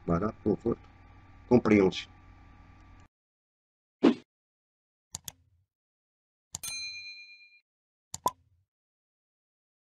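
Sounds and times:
mouse clicks: 0:05.2 - 0:05.4
bright bell ding: 0:06.6 - 0:07.6.

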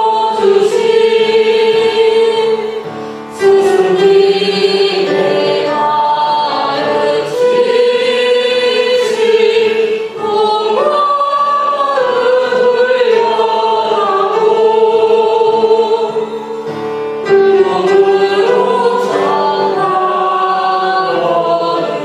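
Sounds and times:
group singing a slow hymn: 0:00.0 - 0:22.0
upright piano accompaniment: 0:00.0 - 0:22.0.

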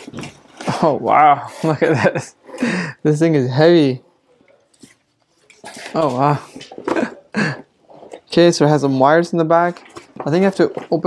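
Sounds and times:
person speaking: 0:05.7 - 0:11.0.

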